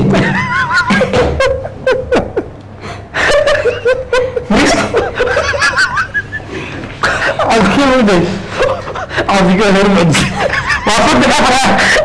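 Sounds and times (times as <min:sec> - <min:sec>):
men laughing: 0:00.0 - 0:12.0.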